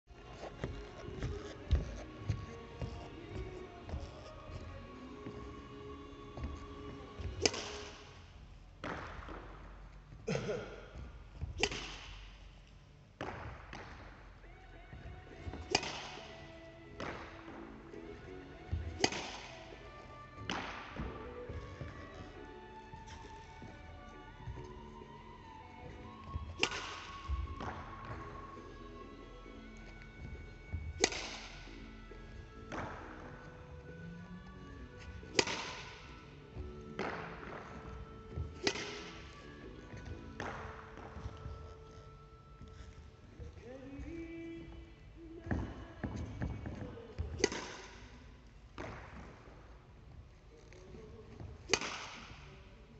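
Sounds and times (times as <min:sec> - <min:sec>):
racket striking shuttlecock: 0:07.2 - 0:08.1, 0:11.5 - 0:12.4, 0:15.5 - 0:17.6, 0:18.7 - 0:19.8, 0:20.4 - 0:21.6, 0:26.5 - 0:28.2, 0:31.0 - 0:31.8, 0:35.3 - 0:37.8, 0:38.4 - 0:39.3, 0:47.3 - 0:48.1, 0:51.7 - 0:52.5.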